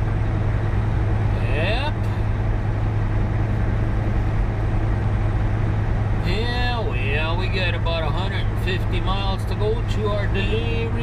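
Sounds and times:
truck diesel engine droning: 0:00.0 - 0:11.0.

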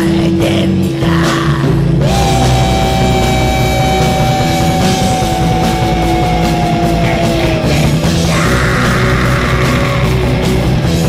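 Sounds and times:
heavy metal music with guitars: 0:00.0 - 0:11.0
long high held note: 0:02.0 - 0:08.3.

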